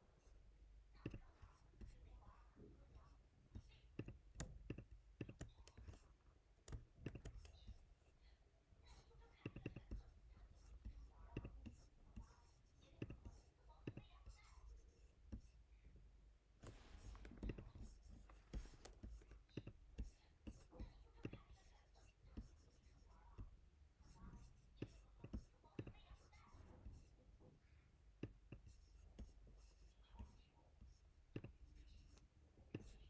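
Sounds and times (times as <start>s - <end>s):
mouse and keyboard clicks: 3.8s - 7.8s.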